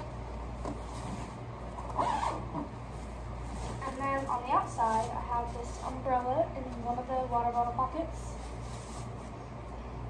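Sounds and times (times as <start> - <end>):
zipper rasp: 1.9 - 2.5.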